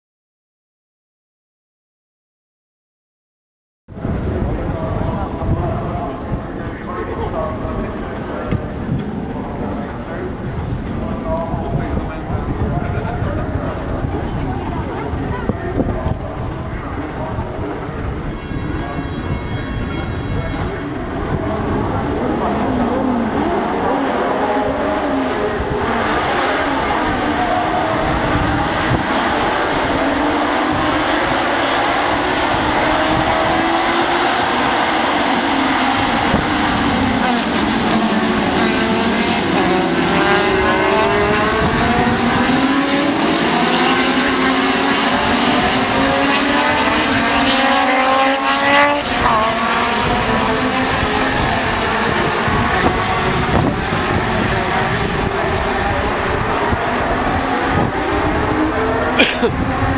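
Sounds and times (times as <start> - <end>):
race car engines accelerating: 4.0 - 59.9.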